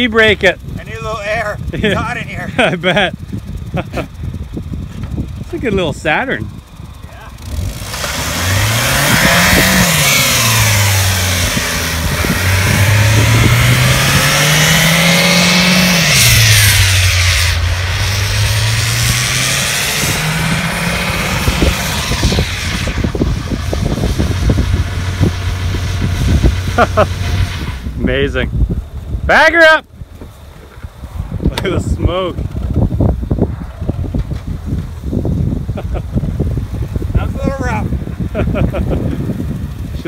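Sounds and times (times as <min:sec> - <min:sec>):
engine crackles: 0:00.0 - 0:40.0
car engine revving hard: 0:07.4 - 0:28.0.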